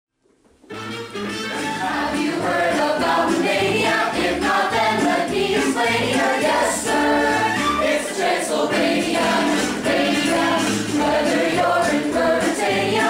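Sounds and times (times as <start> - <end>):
instrumental backing track: 0.5 - 13.0
choir singing: 1.8 - 13.0.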